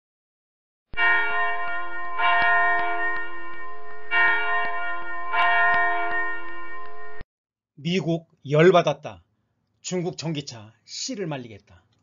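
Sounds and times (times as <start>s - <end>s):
bell chimes ringing: 1.0s - 7.2s.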